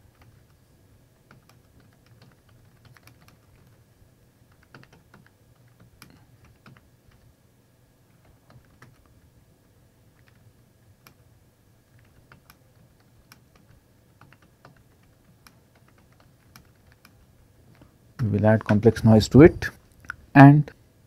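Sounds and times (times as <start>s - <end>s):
computer keyboard typing: 0.0s - 0.6s, 1.2s - 3.8s, 4.5s - 7.3s, 8.2s - 9.1s, 10.1s - 11.2s, 11.9s - 17.3s.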